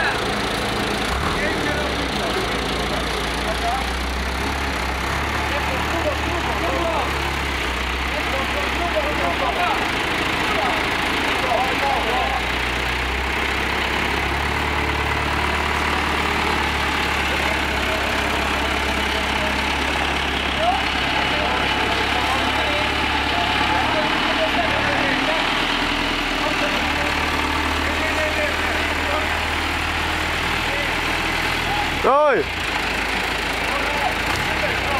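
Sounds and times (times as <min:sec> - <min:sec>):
tractor diesel engine running: 0:00.0 - 0:34.9.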